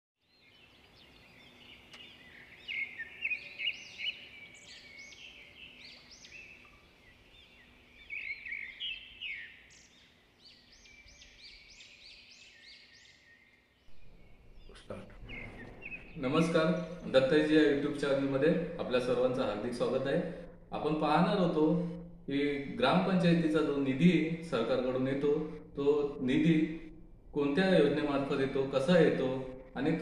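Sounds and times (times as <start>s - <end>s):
small birds chirping: 0.2s - 21.7s.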